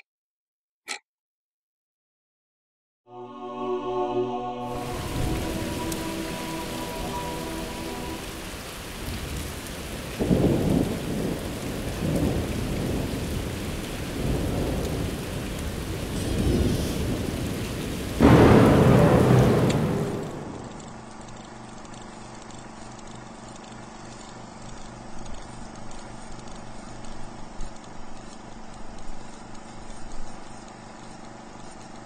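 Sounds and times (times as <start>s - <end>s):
thunder clap and rumbles: 4.7s - 21.3s
steady rain: 4.7s - 32.0s.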